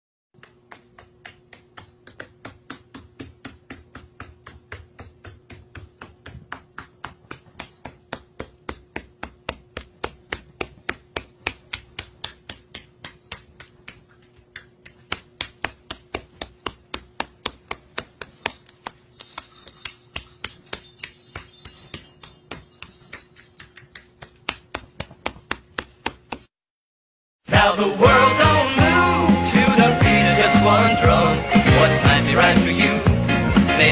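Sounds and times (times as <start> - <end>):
parrot feet tapping on wooden floor: 0.4 - 26.5.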